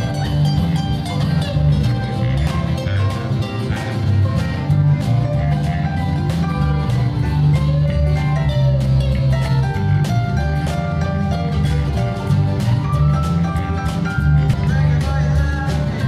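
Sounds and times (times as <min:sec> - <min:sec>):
acoustic guitar strummed: 0:00.0 - 0:16.0
stage piano: 0:00.0 - 0:16.0.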